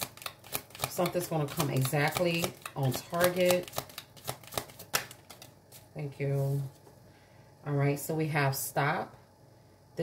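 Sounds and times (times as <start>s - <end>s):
cards being shuffled: 0.0s - 5.9s.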